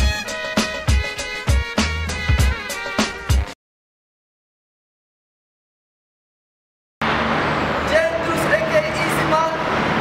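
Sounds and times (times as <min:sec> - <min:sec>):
road traffic noise: 0:07.0 - 0:10.0.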